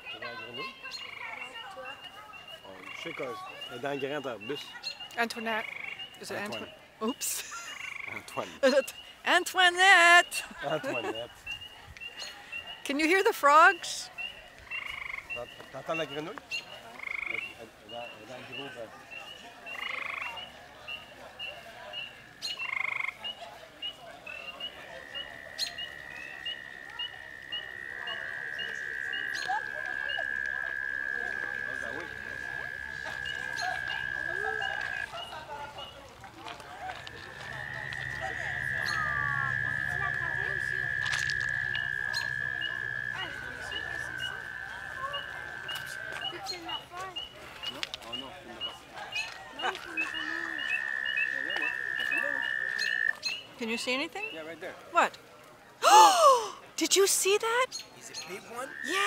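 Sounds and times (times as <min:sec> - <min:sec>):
frogs trilling: 0:00.0 - 0:36.1, 0:36.9 - 0:55.1, 0:56.9 - 0:59.0
chorus of high peeps: 0:37.8 - 0:47.4.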